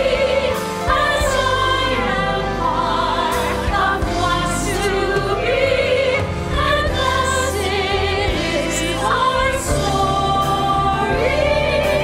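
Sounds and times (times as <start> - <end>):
piano accompaniment: 0.0 - 12.0
women singing in harmony: 0.0 - 12.0.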